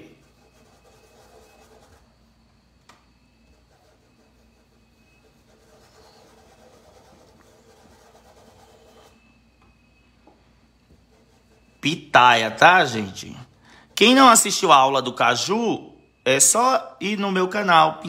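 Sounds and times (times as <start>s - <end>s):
paintbrush rubbing on fabric: 0.0s - 2.2s, 3.3s - 9.4s, 10.9s - 11.9s.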